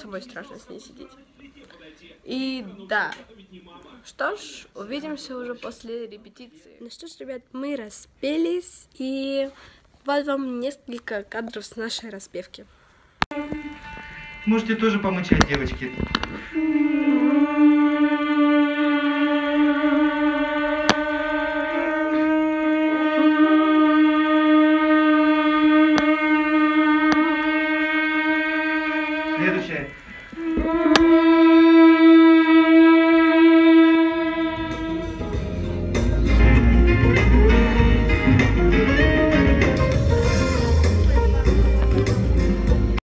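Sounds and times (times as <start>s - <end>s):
voice holding long steady note: 16.1s - 35.8s.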